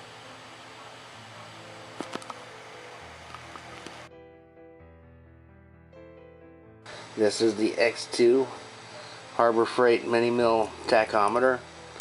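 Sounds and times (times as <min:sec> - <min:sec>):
steady hiss: 0:00.0 - 0:04.1, 0:06.9 - 0:12.0.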